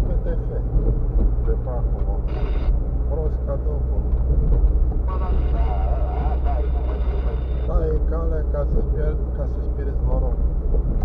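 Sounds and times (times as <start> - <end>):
car driving rumble: 0.0 - 11.0
indistinct talking: 5.0 - 8.3.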